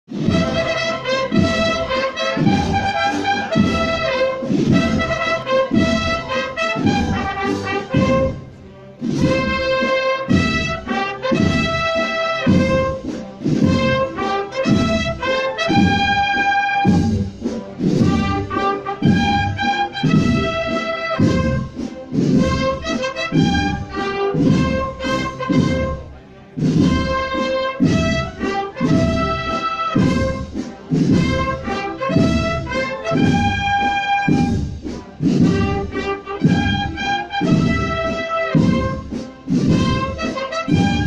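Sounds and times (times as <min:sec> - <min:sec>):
brass band playing a march: 0:00.1 - 0:41.0.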